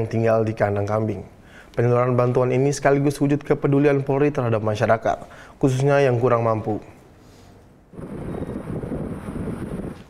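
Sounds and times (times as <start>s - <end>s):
wind buffeting microphone: 7.9s - 10.0s.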